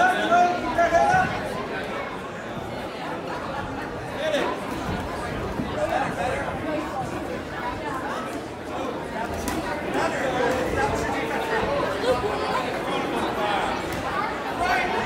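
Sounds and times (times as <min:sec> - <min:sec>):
spectators chattering and calling out: 0:00.0 - 0:15.0.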